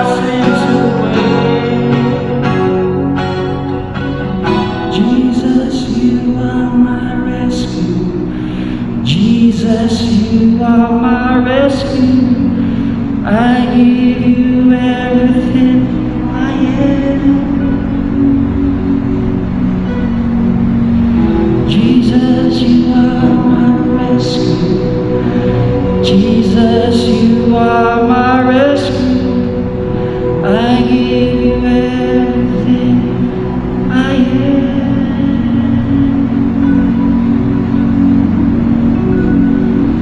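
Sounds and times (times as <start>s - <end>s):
keyboard and guitar chords: 0.0s - 40.0s.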